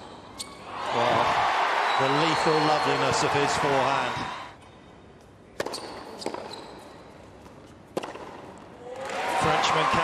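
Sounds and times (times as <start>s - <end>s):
quiet arena ambience: 0.0s - 10.0s
tennis ball pops: 7.9s - 8.4s.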